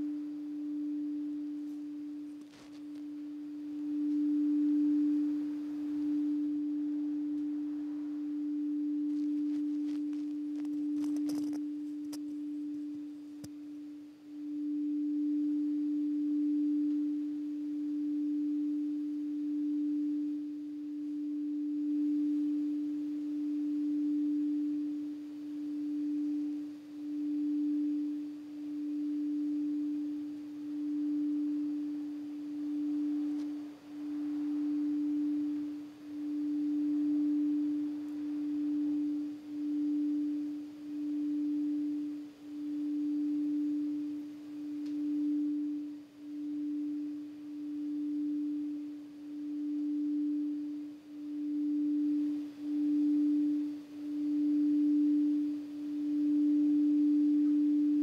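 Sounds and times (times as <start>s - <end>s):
crystal singing bowl tone: 0.0s - 58.0s.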